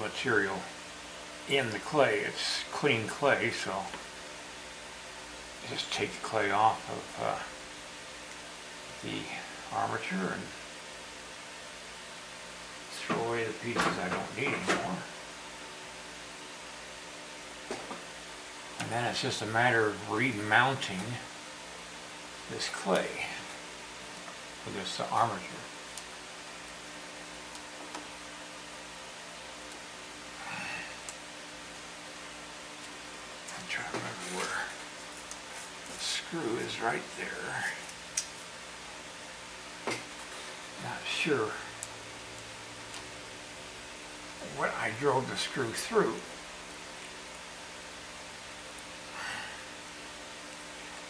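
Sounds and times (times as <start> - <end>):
faint hum: 0.0 - 51.0
steady hiss: 0.0 - 51.0.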